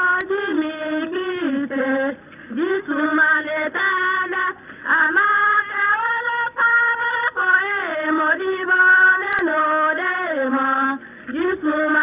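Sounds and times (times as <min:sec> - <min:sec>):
women singing: 0:00.0 - 0:12.0.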